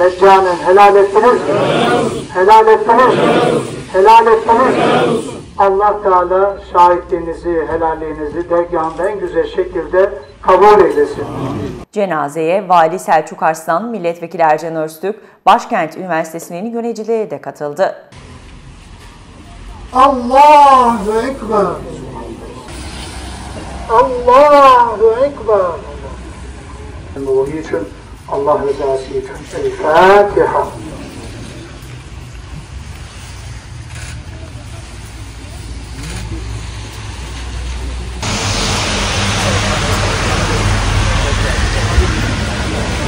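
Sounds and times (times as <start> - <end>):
loud amplified voice: 0.0 - 17.9, 19.9 - 22.7, 23.8 - 26.2, 27.2 - 31.2
low rumble: 18.2 - 27.2, 38.2 - 43.0
low steady rumble: 38.2 - 43.0.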